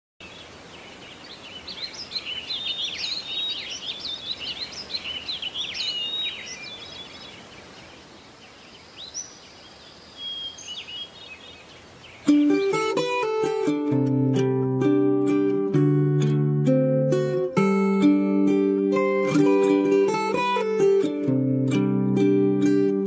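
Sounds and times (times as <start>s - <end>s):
small birds chirping: 0.2s - 13.6s
steady background hiss: 0.2s - 21.6s.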